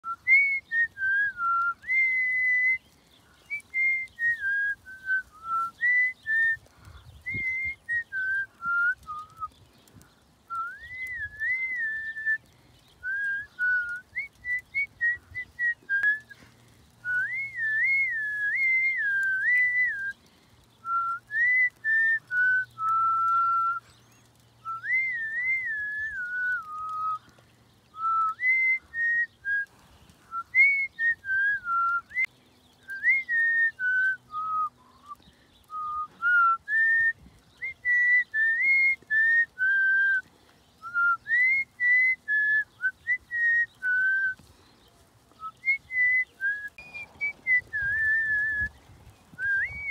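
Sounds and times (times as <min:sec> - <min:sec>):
person whistling a tune: 0:00.0 - 0:02.8, 0:03.5 - 0:06.6, 0:07.3 - 0:09.5, 0:10.5 - 0:12.4, 0:13.0 - 0:16.4, 0:17.0 - 0:20.2, 0:20.8 - 0:23.8, 0:24.6 - 0:27.2, 0:28.0 - 0:29.7, 0:30.3 - 0:32.3, 0:32.9 - 0:40.2, 0:40.8 - 0:44.4, 0:45.4 - 0:48.7, 0:49.4 - 0:49.9.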